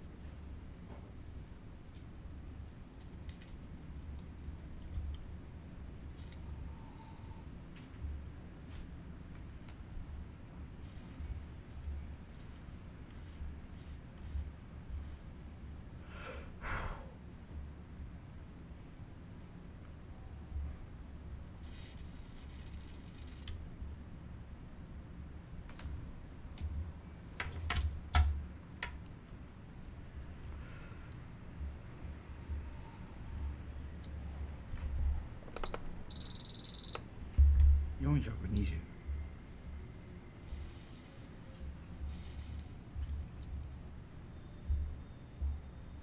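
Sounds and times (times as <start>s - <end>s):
steady low hum: 0.0s - 46.0s
solder crackling hiss: 10.6s - 15.4s, 21.6s - 23.6s, 39.4s - 43.9s
soldering station beeps: 36.1s - 37.0s, 38.5s - 38.9s.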